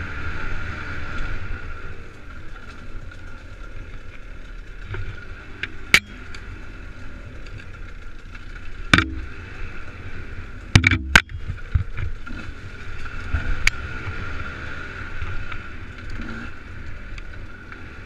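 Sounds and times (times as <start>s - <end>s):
dirt bike engine running: 0.0s - 8.2s, 8.8s - 18.0s
bike knocking on rocks: 4.6s - 6.5s, 7.4s - 9.7s, 10.7s - 12.3s.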